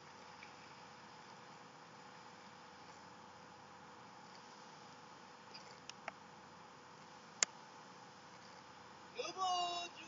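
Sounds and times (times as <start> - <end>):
steady faint hiss: 0.0 - 10.0.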